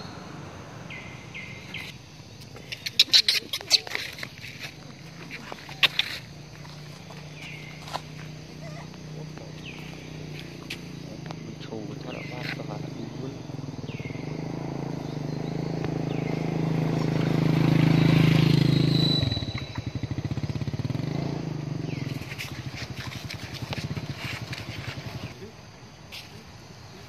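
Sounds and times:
high falling chirps: 0:00.0 - 0:11.1, 0:12.0 - 0:22.8
engine running: 0:03.8 - 0:25.5.

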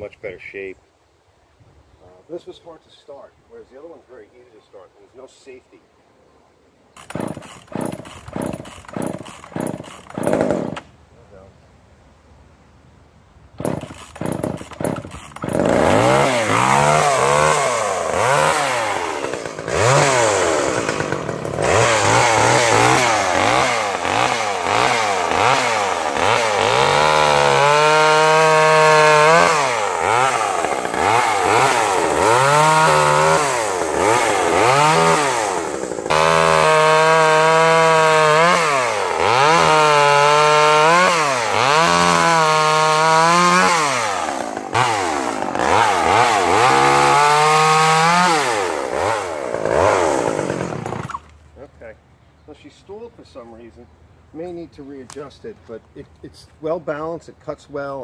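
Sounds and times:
chainsaw revving: 0:07.0 - 0:10.9, 0:13.6 - 0:51.3.

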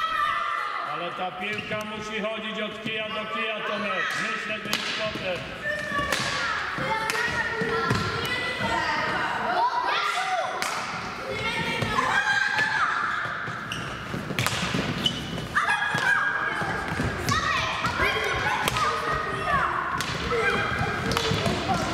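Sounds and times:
children shouting: 0:00.0 - 0:00.9, 0:05.6 - 0:13.7, 0:15.5 - 0:21.9
hockey sticks clacking: 0:04.0 - 0:08.6, 0:13.6 - 0:21.9.

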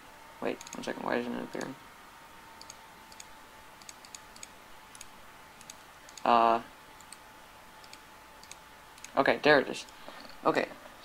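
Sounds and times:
faint high hum: 0:00.0 - 0:11.0
computer mouse clicking: 0:00.6 - 0:00.9, 0:01.5 - 0:01.8, 0:02.6 - 0:06.3, 0:07.0 - 0:07.2, 0:07.8 - 0:09.2.

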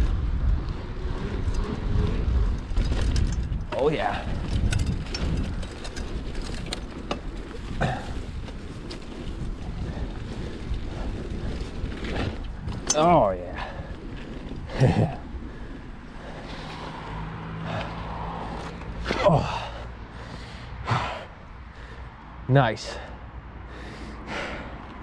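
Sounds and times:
mountain bike rattling on dirt trail: 0:00.0 - 0:21.0
wind buffeting microphone: 0:00.0 - 0:22.4.

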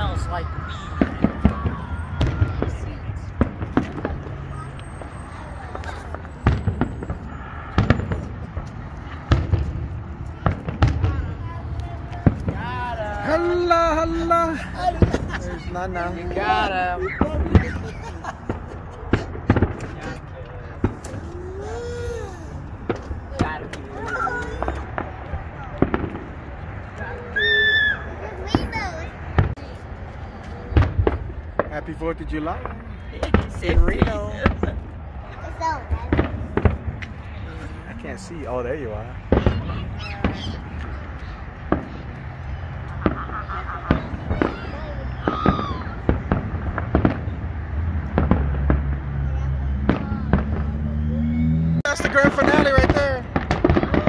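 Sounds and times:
fireworks bangs and booms: 0:00.0 - 0:51.1, 0:51.9 - 0:54.0.

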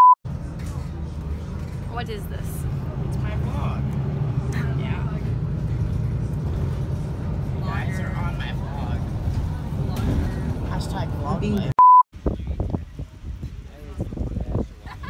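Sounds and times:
bus engine and road drone: 0:00.3 - 0:15.0.

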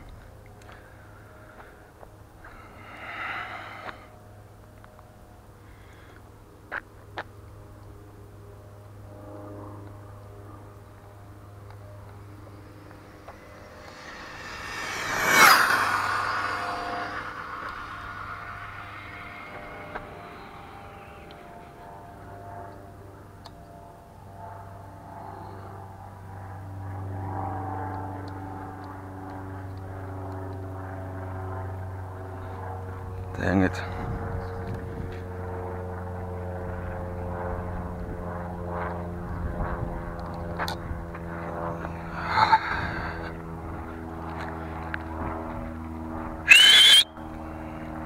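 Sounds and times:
steady low hum: 0:00.0 - 0:48.0
rc truck motor whine: 0:12.2 - 0:21.3, 0:46.5 - 0:47.2.

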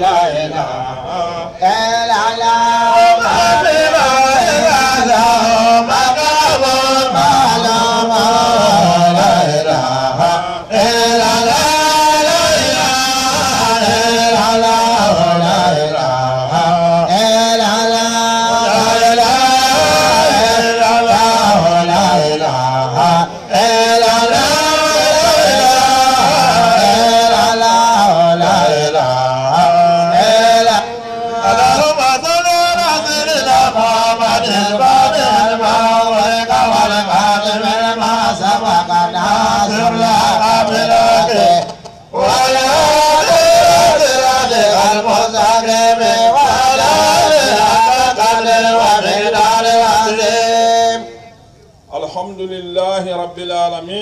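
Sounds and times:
melodic devotional chanting: 0:00.0 - 0:54.0.

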